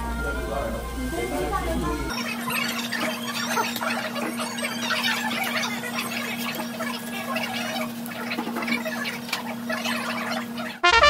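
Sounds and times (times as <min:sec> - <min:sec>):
steady low hum: 0:00.0 - 0:10.8
restaurant din: 0:00.0 - 0:11.0.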